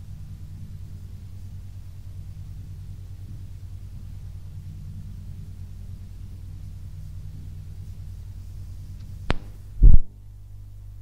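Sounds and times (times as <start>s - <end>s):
low steady hum: 0.0s - 11.0s
tape hiss: 0.0s - 11.0s.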